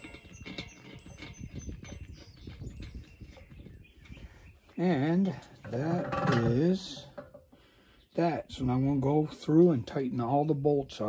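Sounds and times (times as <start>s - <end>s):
man speaking: 4.8s - 7.1s.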